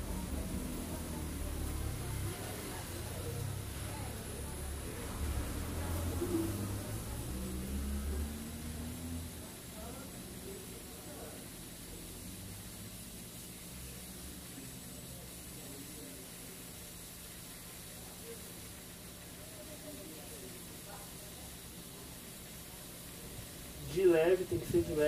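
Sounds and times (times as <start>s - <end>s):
equipment hum and hiss: 0.0s - 25.0s
faint voices: 0.0s - 25.0s.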